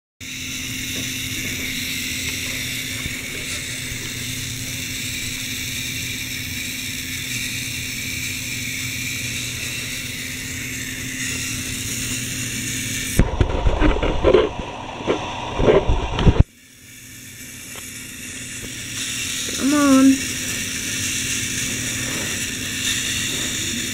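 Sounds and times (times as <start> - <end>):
toy truck motor whining: 0.2 - 13.2, 16.8 - 23.9.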